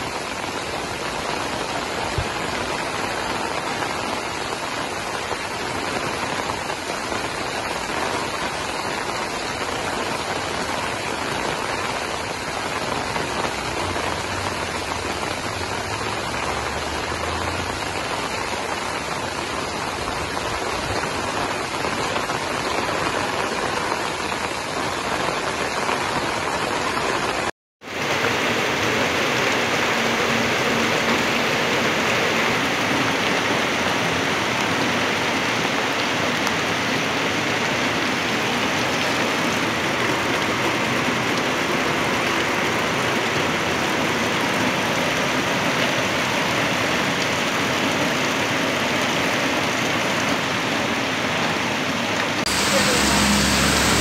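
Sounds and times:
heavy rain pouring: 0.0s - 54.0s.

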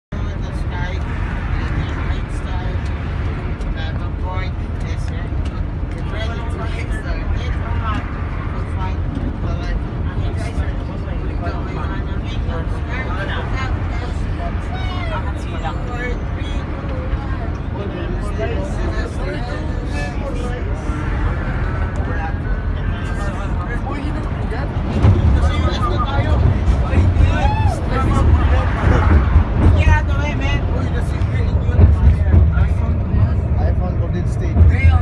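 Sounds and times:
bus engine and tyres rumbling: 0.1s - 35.0s
people talking indistinctly: 0.1s - 35.0s.

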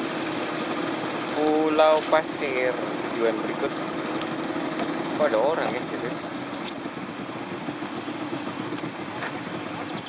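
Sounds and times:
boat engine droning: 0.0s - 10.0s
water rushing around hull: 0.0s - 10.0s.

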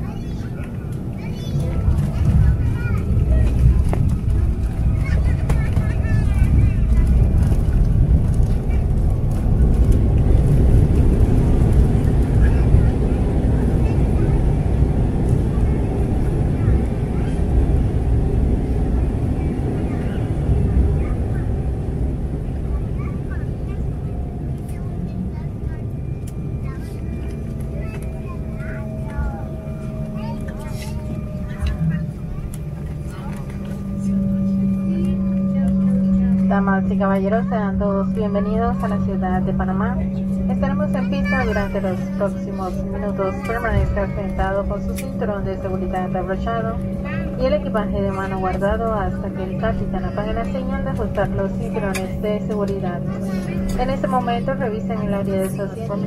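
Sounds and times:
low rumble of wheels and air: 0.0s - 56.0s.

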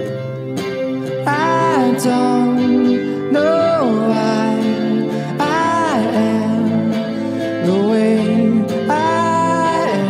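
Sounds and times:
strummed electric guitar: 0.0s - 10.0s
man singing: 1.2s - 10.0s.

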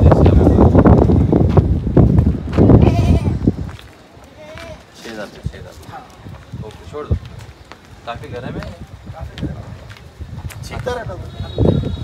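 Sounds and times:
wind buffeting microphone: 0.0s - 12.0s
goat bleating: 2.7s - 3.4s.

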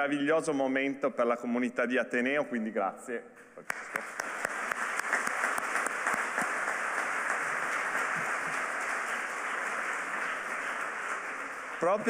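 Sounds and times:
audience applause: 3.7s - 12.0s.

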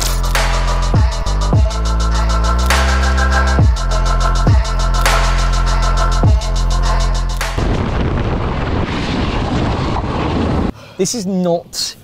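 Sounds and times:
electronic music with heavy bass: 0.0s - 7.8s.

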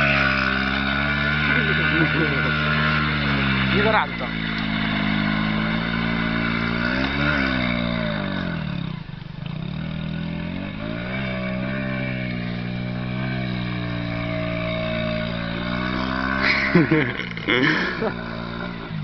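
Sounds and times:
vehicle engine revving: 0.0s - 19.0s.

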